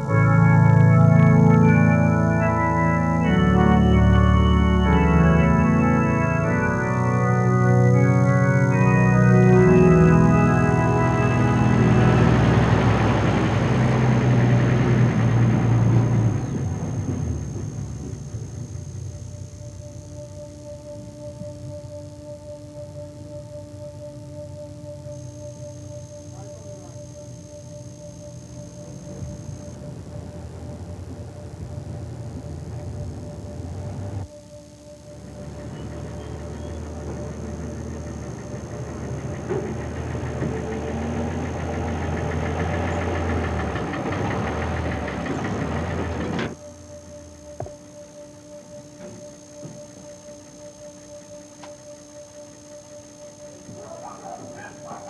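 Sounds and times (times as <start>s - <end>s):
truck engine running: 0.0s - 21.7s, 24.2s - 34.3s, 35.2s - 55.0s
droning music tone: 0.0s - 55.0s.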